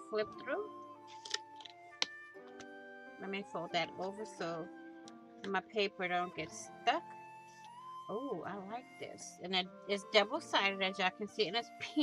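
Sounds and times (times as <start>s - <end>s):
soft background music: 0.0s - 12.0s
packaging rustling: 1.0s - 2.7s.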